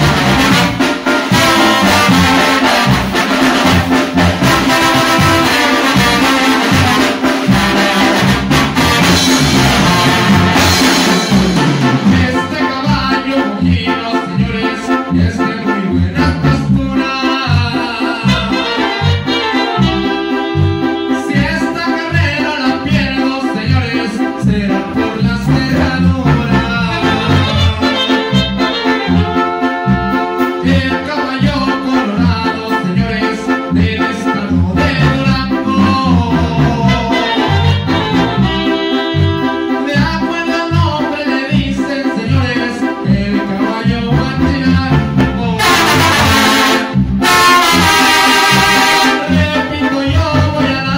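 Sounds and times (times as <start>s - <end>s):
latin band playing: 0.0s - 50.9s.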